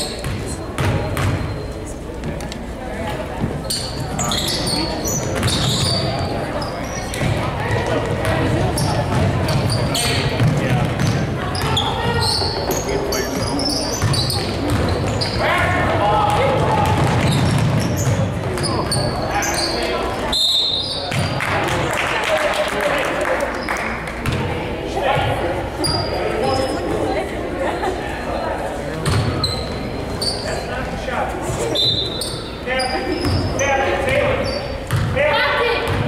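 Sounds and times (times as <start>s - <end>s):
voices of spectators and players: 0.0s - 36.0s
basketball bouncing on hardwood: 10.4s - 11.8s.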